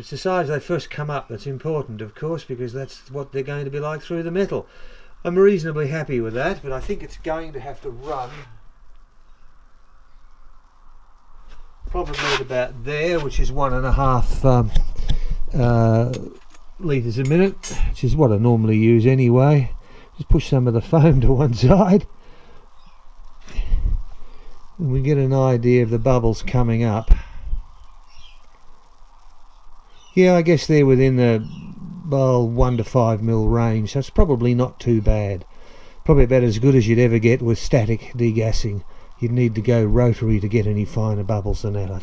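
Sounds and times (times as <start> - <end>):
gas bubbling through water: 30.4 - 33.3.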